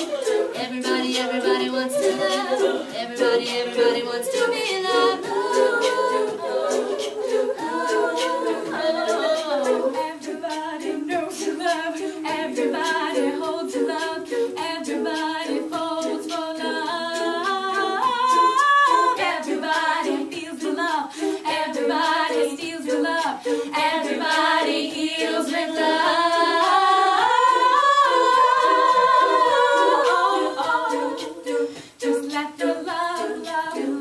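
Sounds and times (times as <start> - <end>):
women singing a cappella harmony: 0.0 - 34.0.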